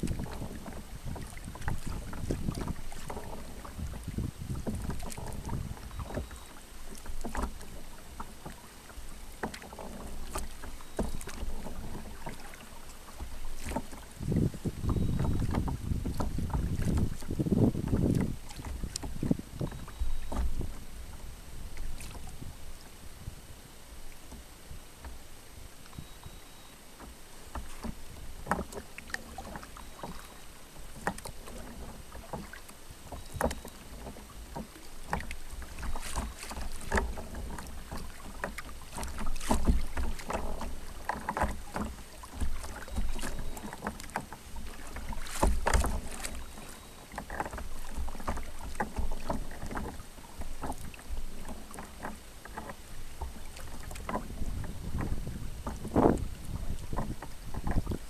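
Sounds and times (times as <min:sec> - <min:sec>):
wind rumble on microphone: 0:00.0 - 0:06.3, 0:14.1 - 0:23.7, 0:53.5 - 0:58.0
paddle splashing in water: 0:00.0 - 0:58.0.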